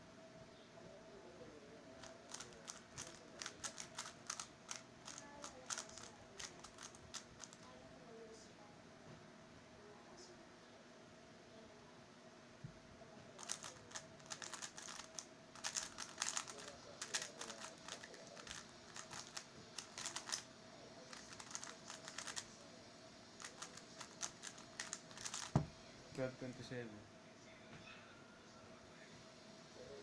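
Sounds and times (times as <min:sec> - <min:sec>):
speed cube clicking: 0:02.0 - 0:07.6, 0:13.4 - 0:20.5, 0:21.1 - 0:22.5, 0:23.4 - 0:25.7.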